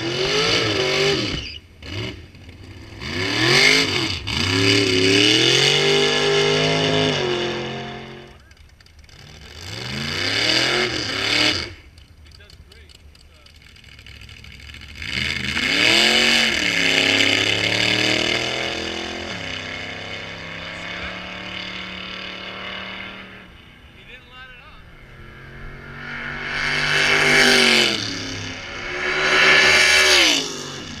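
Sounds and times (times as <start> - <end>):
drag racing car engine: 0.0 - 31.0
engine revving: 0.0 - 31.0.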